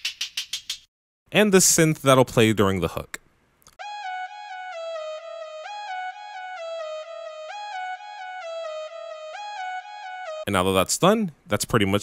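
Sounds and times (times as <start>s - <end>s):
buzzy synthesizer lead melody: 3.8s - 10.5s.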